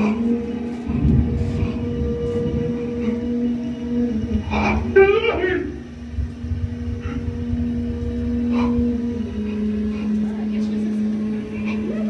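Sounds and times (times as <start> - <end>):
deep rumble: 0.0 - 12.0
low droning tone: 0.0 - 12.0.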